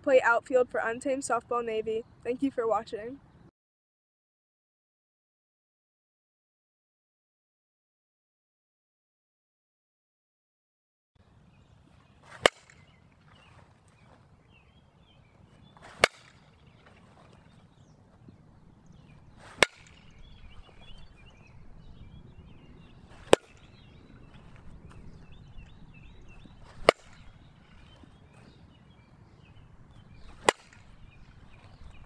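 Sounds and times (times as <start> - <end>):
bat striking softball: 12.3 - 12.9, 15.8 - 16.5, 19.4 - 20.9, 23.1 - 25.1, 26.6 - 28.1, 30.2 - 31.6.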